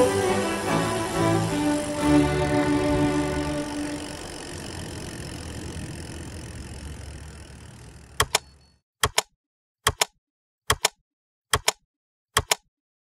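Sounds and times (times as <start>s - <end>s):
typewriter key clicks: 8.2s - 11.8s, 12.4s - 12.7s.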